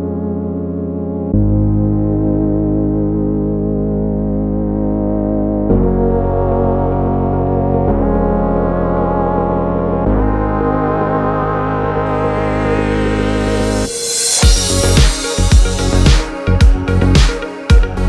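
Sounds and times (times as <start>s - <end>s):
sustained held chords: 0.0s - 18.0s.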